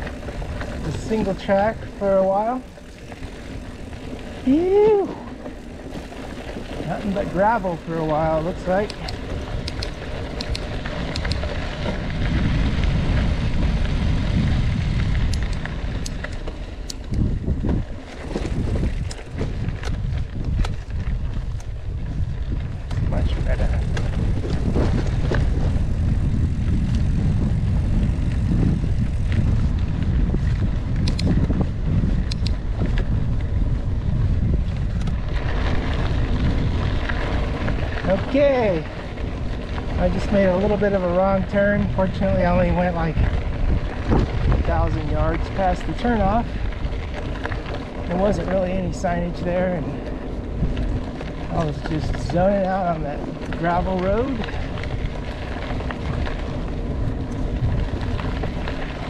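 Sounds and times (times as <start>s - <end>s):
bike tyres rolling over gravel: 0.0s - 59.0s
wind rumbling on microphone: 0.0s - 59.0s
clicks and rattles of stones: 8.1s - 12.3s.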